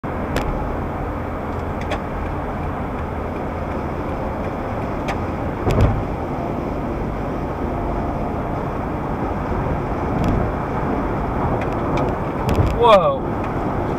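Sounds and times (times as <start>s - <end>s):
car road and engine noise: 0.0s - 13.9s
loud thump: 5.6s - 6.1s.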